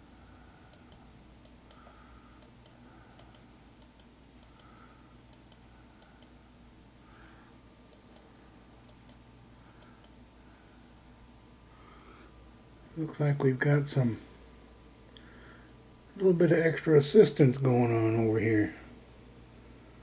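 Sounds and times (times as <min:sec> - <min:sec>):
computer mouse clicking: 0:00.7 - 0:06.4, 0:07.9 - 0:09.2, 0:09.8 - 0:10.2.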